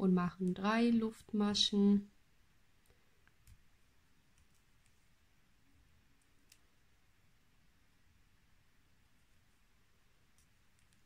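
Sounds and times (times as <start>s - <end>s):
crochet hook clicking: 6.2s - 6.8s.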